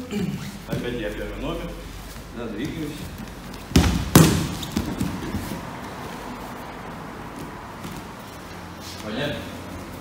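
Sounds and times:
scuffs of feet on mat: 1.9 - 6.5, 7.2 - 10.0
body thudding on foam mat: 3.5 - 5.7.

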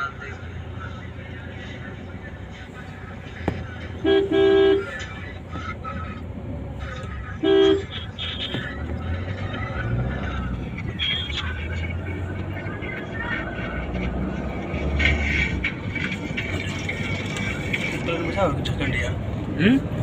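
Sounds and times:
road and engine noise in car: 0.0 - 20.0
vehicle horn honk: 4.0 - 5.0, 7.4 - 8.6, 11.0 - 11.4.

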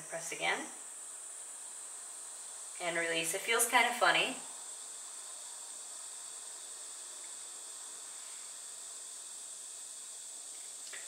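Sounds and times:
high room tone hiss: 0.0 - 11.0.

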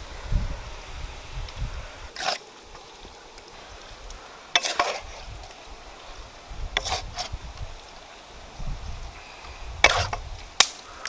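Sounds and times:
utensil scraping stone bowl: 2.2 - 2.4, 4.5 - 5.3, 6.7 - 7.4, 9.8 - 10.3.

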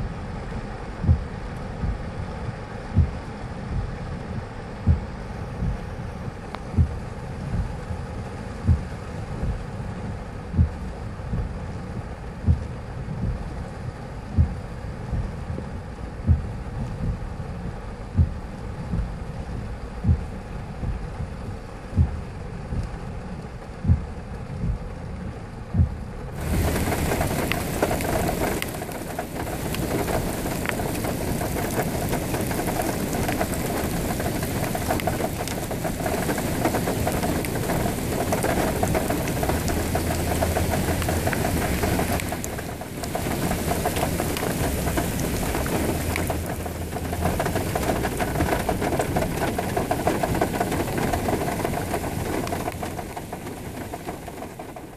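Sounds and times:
heavy rain pelting a car: 0.0 - 54.9.

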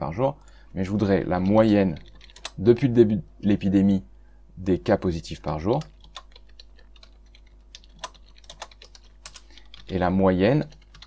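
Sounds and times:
faint low hum: 0.0 - 11.0
computer keyboard typing: 1.3 - 2.8, 5.6 - 11.0.

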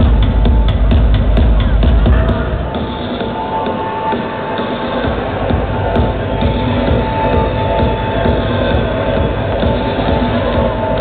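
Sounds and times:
loud techno music: 0.0 - 11.0
steady kick drum beat: 0.0 - 11.0.

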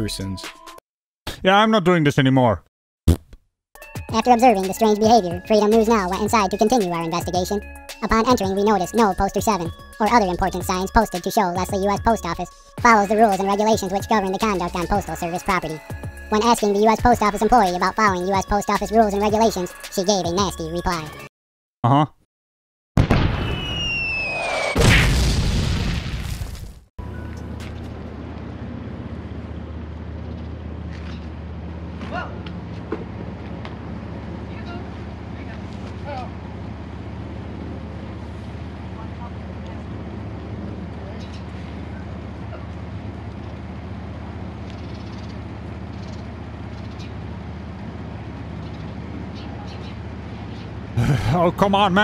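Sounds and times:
faint outdoor background noise: 27.0 - 52.0
vehicle engine idling: 27.0 - 52.0.

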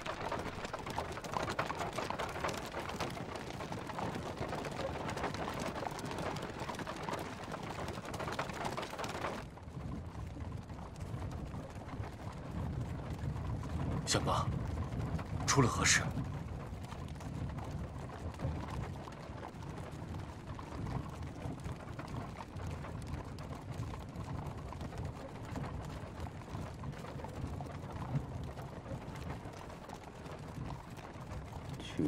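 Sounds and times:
faint clicks and creaks: 0.0 - 32.0.

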